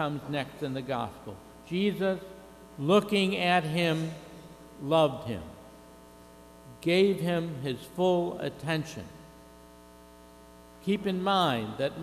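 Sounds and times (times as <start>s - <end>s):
man speaking: 0.0s - 4.2s, 4.8s - 5.6s, 6.7s - 9.2s, 10.8s - 12.0s
electrical mains hum: 0.0s - 12.0s.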